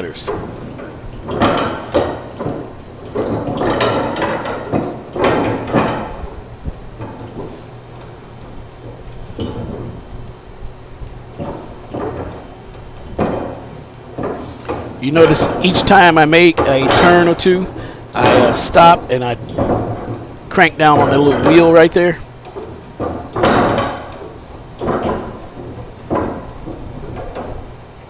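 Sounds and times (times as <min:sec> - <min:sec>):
tool clicking on pipe: 0:00.0 - 0:28.0.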